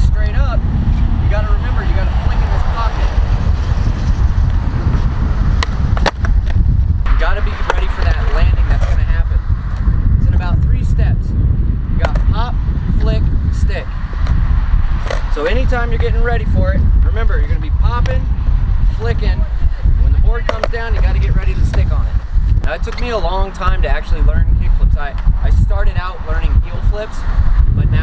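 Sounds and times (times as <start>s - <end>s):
man talking: 0.0s - 0.6s, 1.2s - 3.2s, 7.1s - 9.5s, 10.1s - 13.9s, 15.3s - 28.0s
passing road traffic: 0.0s - 28.0s
wind rumble: 0.0s - 28.0s.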